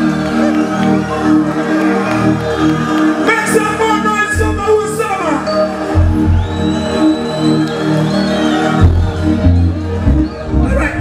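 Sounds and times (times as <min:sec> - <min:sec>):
crowd noise: 0:00.0 - 0:04.6, 0:05.4 - 0:11.0
loud amplified concert music: 0:00.0 - 0:11.0.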